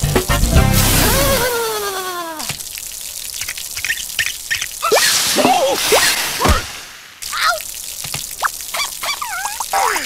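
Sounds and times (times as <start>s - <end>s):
cartoon water spurting and dripping: 0.6s - 10.0s
squeaky cartoon vocal sounds: 8.4s - 10.0s.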